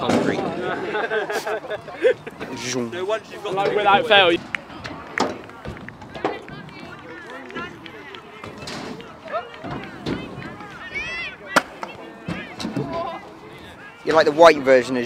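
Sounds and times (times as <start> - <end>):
distant chatter of voices: 0.0 - 15.0.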